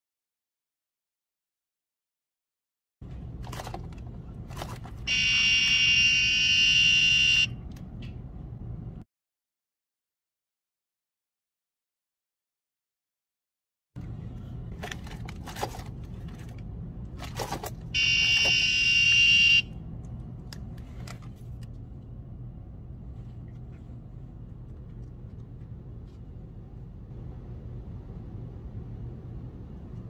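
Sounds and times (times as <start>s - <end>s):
low background hum: 3.0s - 9.0s, 14.0s - 30.0s
electronic buzzer beep: 5.1s - 7.5s, 18.0s - 19.6s.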